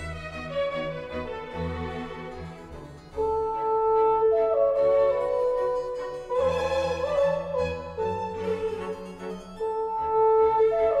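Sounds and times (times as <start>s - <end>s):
classical instrumental music: 0.0s - 11.0s.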